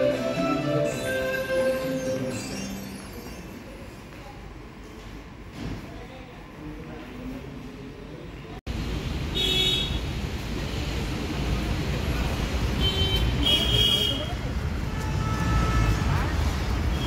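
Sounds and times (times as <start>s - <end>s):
passing traffic rumble: 8.7s - 17.0s
car horn toots: 14.9s - 16.1s.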